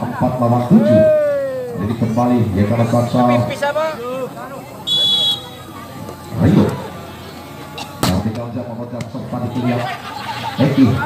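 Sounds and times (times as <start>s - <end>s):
referee's whistle: 4.8s - 5.6s.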